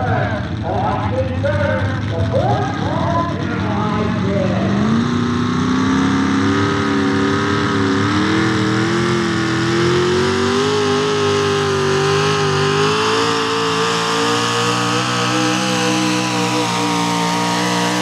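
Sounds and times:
truck engine at full throttle: 0:00.0 - 0:18.0.

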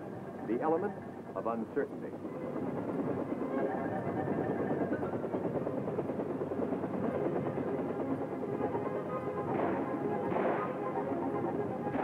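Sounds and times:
helicopter rotor and engine: 0:00.0 - 0:12.0
music: 0:02.2 - 0:12.0.

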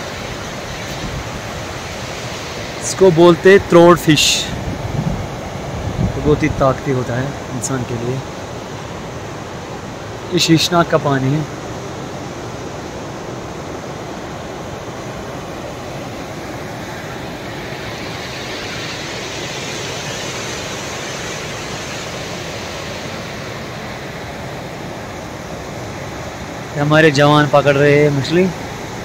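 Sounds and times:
river rushing over rocks: 0:00.0 - 0:29.0.

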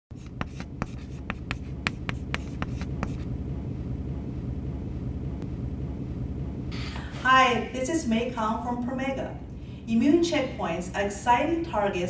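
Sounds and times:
chalk writing on blackboard: 0:00.1 - 0:03.3.

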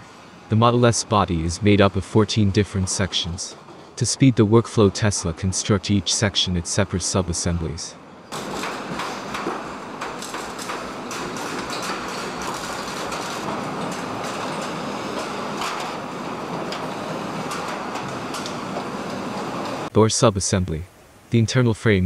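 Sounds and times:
mechanical hiss and rumble: 0:00.0 - 0:22.0.

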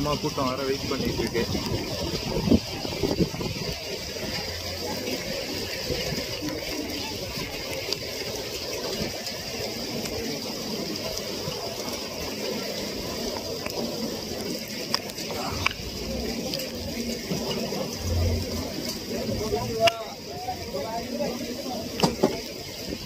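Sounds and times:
wind buffeting microphone: 0:00.1 - 0:07.6.

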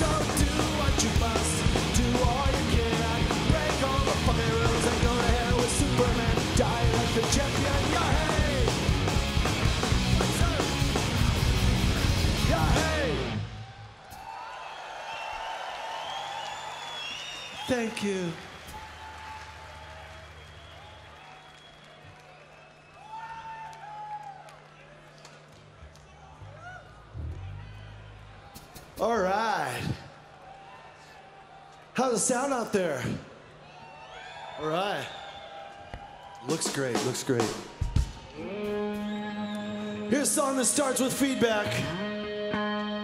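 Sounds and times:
punk rock band playing: 0:00.0 - 0:13.6, 0:36.6 - 0:43.0
crowd cheering and whistling: 0:11.9 - 0:25.4, 0:26.1 - 0:29.0, 0:33.6 - 0:41.4.

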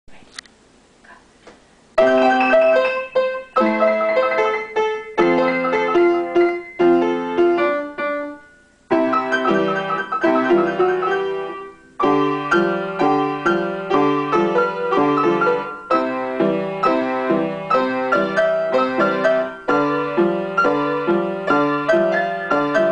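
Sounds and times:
piano duet: 0:02.0 - 0:22.9.

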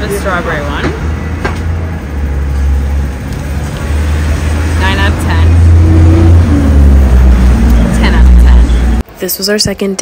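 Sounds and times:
vehicle engine rumbling: 0:00.0 - 0:09.2.

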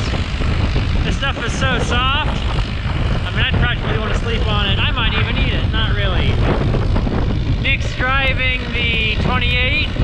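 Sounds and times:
tractor engine rumble: 0:00.0 - 0:10.0.

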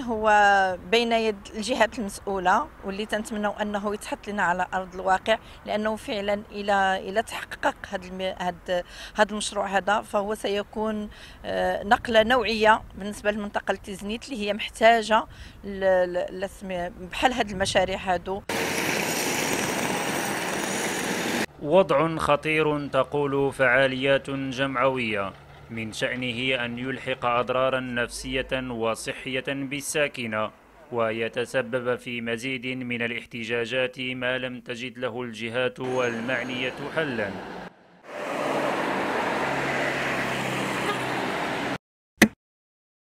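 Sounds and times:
road and tyre noise: 0:00.0 - 0:14.5, 0:15.2 - 0:31.2, 0:35.8 - 0:41.8
scooter on road: 0:18.4 - 0:21.5, 0:24.3 - 0:27.2, 0:35.9 - 0:41.8
truck engine hum: 0:18.4 - 0:29.8, 0:35.8 - 0:41.8
cars passing: 0:18.5 - 0:21.6, 0:23.8 - 0:28.8, 0:35.8 - 0:41.8.

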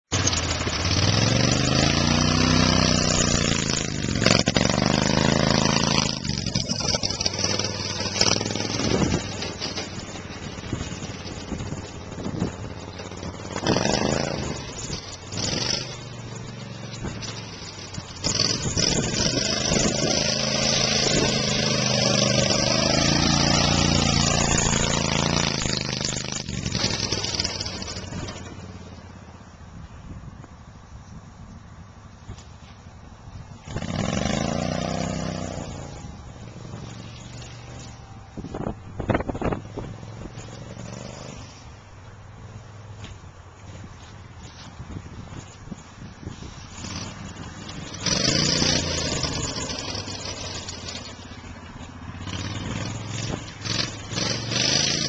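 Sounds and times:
golf cart motor revving: 0:00.1 - 0:29.0, 0:33.6 - 0:41.8, 0:46.3 - 0:55.0.

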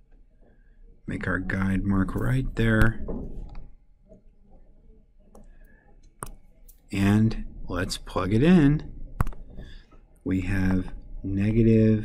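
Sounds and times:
stylus tapping on touchscreen: 0:05.3 - 0:06.5, 0:09.2 - 0:09.8.

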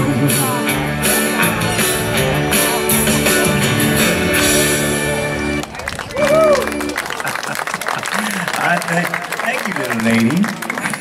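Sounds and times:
live country-rock song: 0:00.0 - 0:05.8
audience applause: 0:05.5 - 0:11.0
person whooping: 0:06.1 - 0:07.0.

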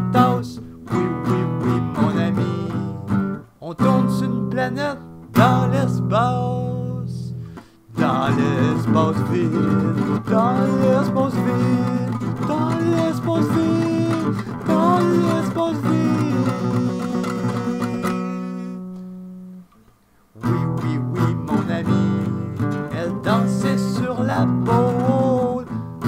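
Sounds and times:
wordless singing: 0:00.0 - 0:19.0, 0:20.4 - 0:25.7
acoustic guitar strumming: 0:00.0 - 0:26.0.

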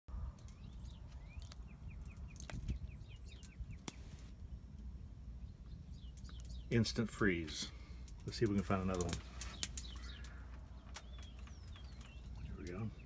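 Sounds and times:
low outdoor rumble: 0:00.1 - 0:13.0
small birds chirping: 0:00.1 - 0:13.0
sharp clicks: 0:07.5 - 0:12.8.

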